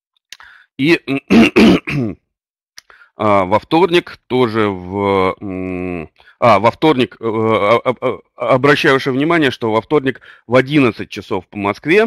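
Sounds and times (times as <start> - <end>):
man clearing his throat: 1.1 - 2.2.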